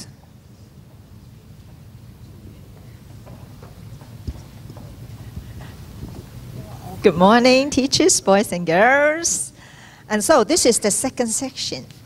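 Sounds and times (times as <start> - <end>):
low hum of hall: 0.0 - 12.0
footsteps on wooden floor: 2.8 - 6.3.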